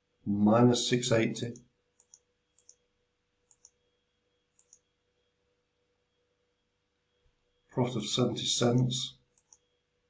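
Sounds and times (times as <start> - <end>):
computer mouse button clicks: 3.5 - 3.8, 4.6 - 4.8.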